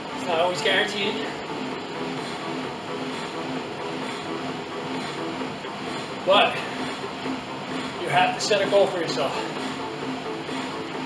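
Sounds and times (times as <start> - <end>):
exercise machine fan whirring: 0.0 - 11.0.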